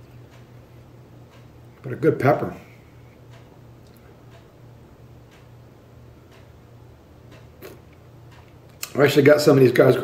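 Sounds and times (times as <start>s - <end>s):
low steady hum: 0.0s - 10.0s
clock ticking faintly: 0.1s - 0.6s, 1.2s - 1.8s, 3.3s - 4.6s, 5.2s - 5.6s, 6.2s - 6.6s, 7.2s - 7.6s, 8.2s - 9.0s.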